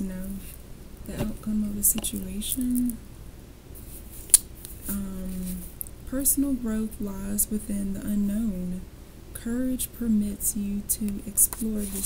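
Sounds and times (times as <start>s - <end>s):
person speaking: 0.0s - 3.0s, 4.8s - 8.8s, 9.4s - 12.0s.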